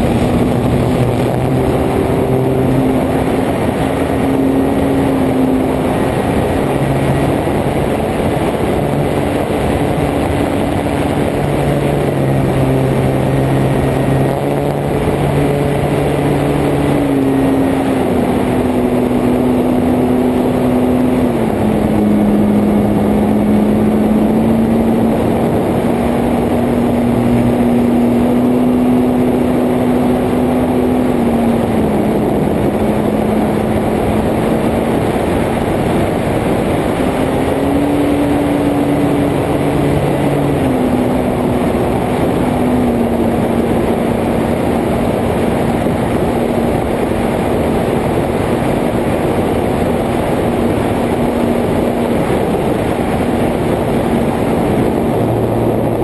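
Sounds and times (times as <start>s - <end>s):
electric motor and propeller hum: 0.0s - 56.0s
rush of wind: 0.0s - 56.0s.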